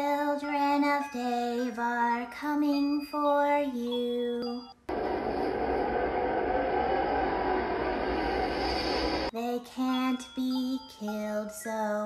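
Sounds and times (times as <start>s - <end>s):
low rumble: 4.9s - 9.3s
steady rushing noise: 4.9s - 9.3s.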